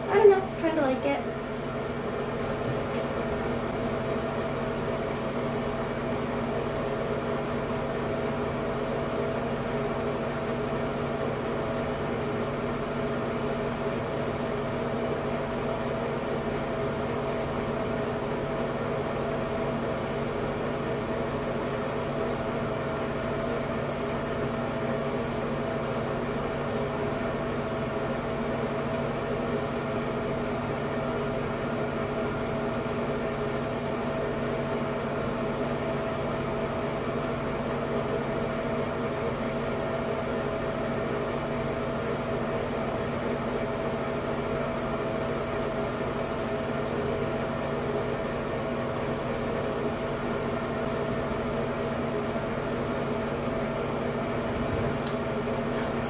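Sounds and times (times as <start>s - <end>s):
exhaust fan humming: 0.0s - 56.0s.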